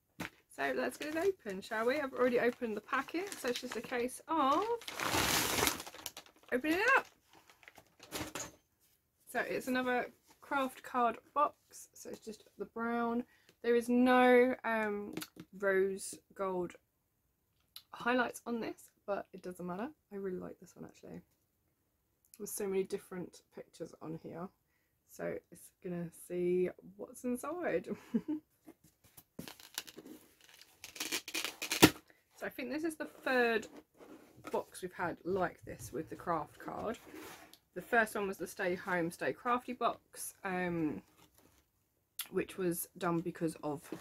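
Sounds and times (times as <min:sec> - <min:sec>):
packaging rustle: 0:00.9 - 0:08.4, 0:29.4 - 0:32.0
cardboard scraping and rustling: 0:04.5 - 0:06.5, 0:36.6 - 0:37.6.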